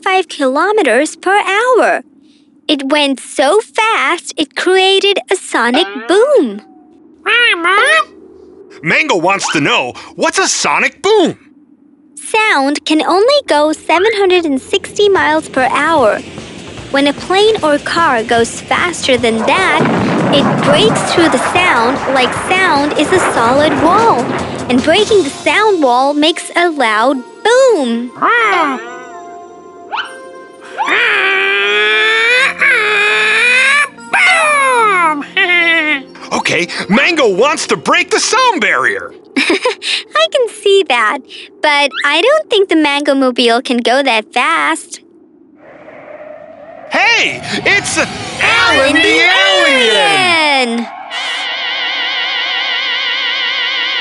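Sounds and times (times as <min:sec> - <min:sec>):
cartoon monkey squeaky vocalization: 0:05.7 - 0:08.1, 0:30.8 - 0:36.2, 0:41.9 - 0:42.2
person speaking: 0:08.8 - 0:11.4
light background music: 0:23.2 - 0:30.7.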